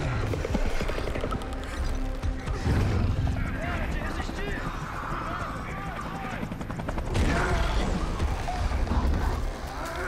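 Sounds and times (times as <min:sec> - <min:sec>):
arching chirps and clicks: 0:00.0 - 0:07.0.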